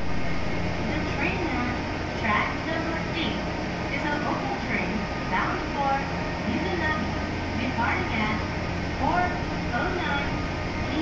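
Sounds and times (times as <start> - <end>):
low electric hum: 0.0 - 11.0
woman on public address: 0.8 - 11.0.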